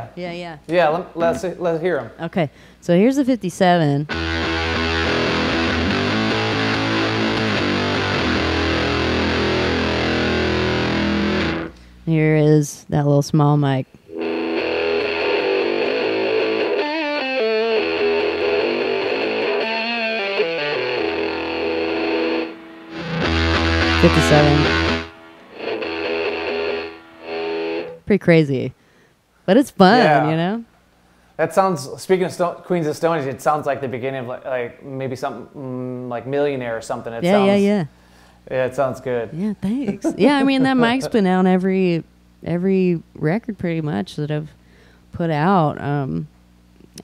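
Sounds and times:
distorted electric guitar chords: 0:04.0 - 0:11.9, 0:14.1 - 0:28.0, 0:37.2 - 0:37.8, 0:39.9 - 0:41.4.

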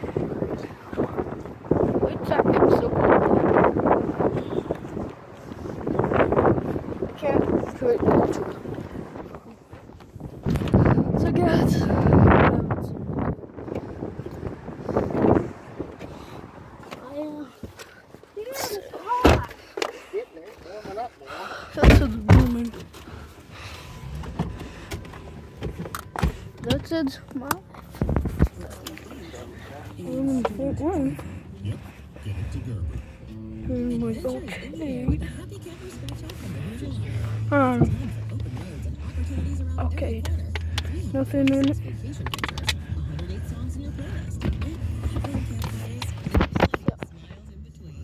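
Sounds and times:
low rumble inside a car: 0:00.0 - 0:17.7, 0:21.8 - 0:48.0
wind buffeting microphone: 0:00.0 - 0:17.8, 0:21.8 - 0:28.8
child's voice: 0:17.0 - 0:17.6, 0:18.4 - 0:19.6
loud thumps: 0:21.8 - 0:22.7.

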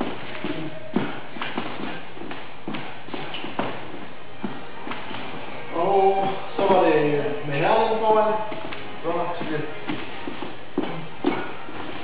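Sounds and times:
shoes shuffling on floor: 0:00.0 - 0:12.0
shoes tapping on floor: 0:00.0 - 0:12.0.

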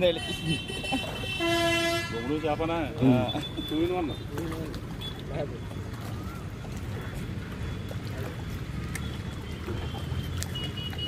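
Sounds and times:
horn toot: 0:00.7 - 0:02.3
people's voices: 0:02.1 - 0:09.1.

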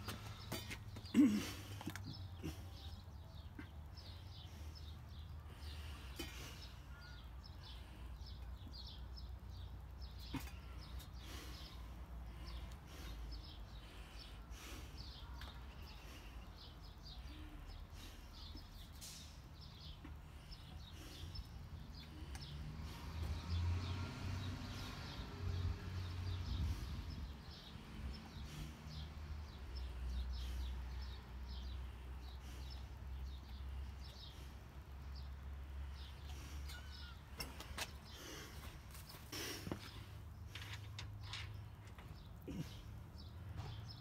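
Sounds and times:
small birds chirping: 0:00.0 - 0:44.0.

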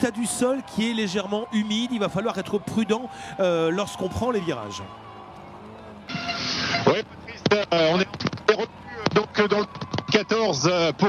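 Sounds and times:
radio link noise rush: 0:06.0 - 0:11.0.

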